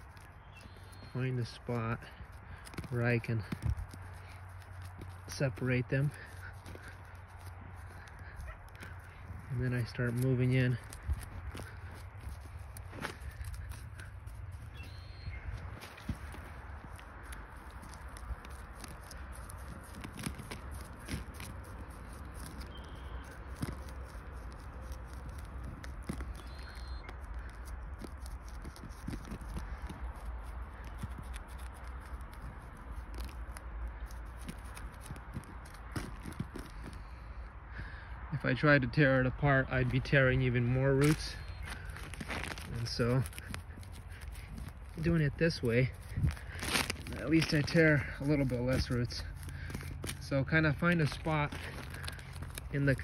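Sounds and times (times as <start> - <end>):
stick scraping soil: 0.0 - 37.5, 38.4 - 53.0.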